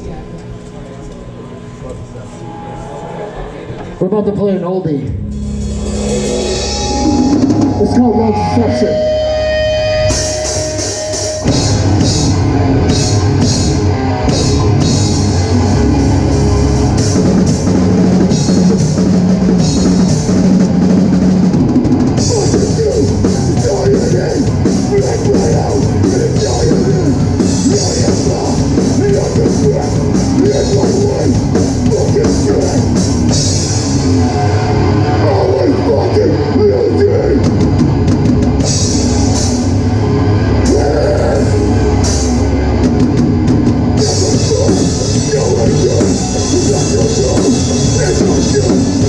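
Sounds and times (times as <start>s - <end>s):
punk band playing live: 5.0s - 49.0s
cymbal crashes: 5.2s - 12.4s.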